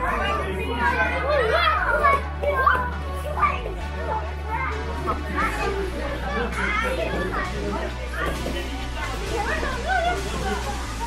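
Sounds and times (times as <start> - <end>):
background music with bass line: 0.0 - 11.0
children chattering and calling out: 0.0 - 11.0.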